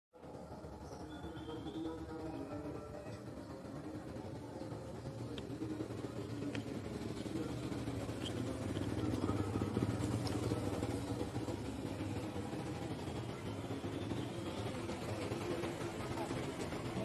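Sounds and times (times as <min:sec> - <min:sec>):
motor vehicle engine hum: 0:00.2 - 0:17.0.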